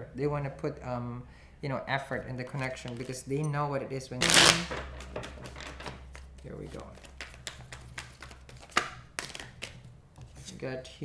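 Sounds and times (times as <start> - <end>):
cards being shuffled: 2.5 - 3.2, 4.2 - 10.6.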